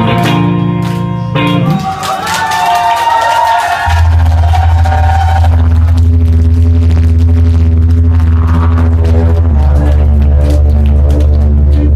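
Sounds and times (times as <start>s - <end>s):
loud low drone: 3.9s - 11.9s.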